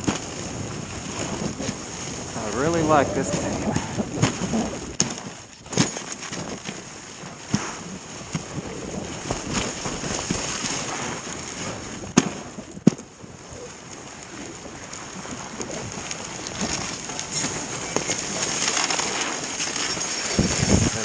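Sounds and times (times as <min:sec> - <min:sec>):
sled knocks and rattles: 0:00.0 - 0:21.0
sled runners hissing over snow: 0:00.0 - 0:21.0.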